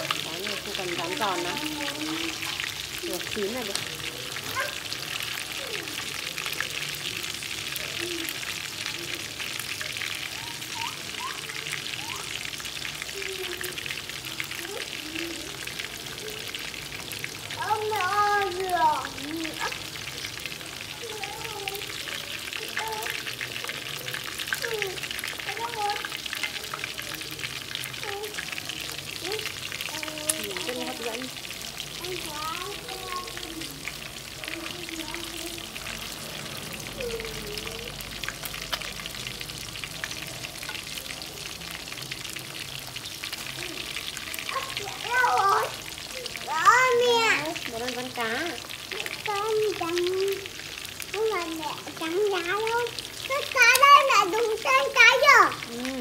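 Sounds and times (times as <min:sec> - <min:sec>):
faint voices talking: 0:00.0 - 0:56.0
fish frying in hot oil: 0:00.0 - 0:56.0.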